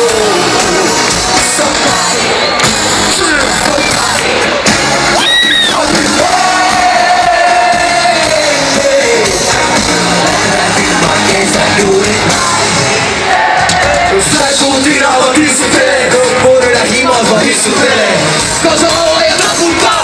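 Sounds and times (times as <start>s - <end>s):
crowd noise: 0.0s - 20.0s
live rap-pop concert music: 0.0s - 20.0s.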